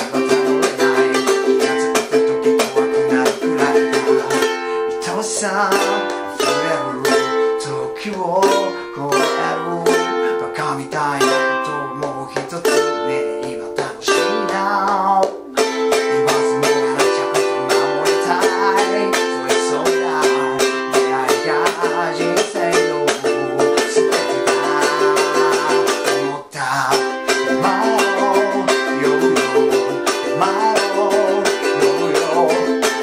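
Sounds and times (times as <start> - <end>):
man singing: 0.0 - 33.0
ukulele strumming: 0.0 - 33.0.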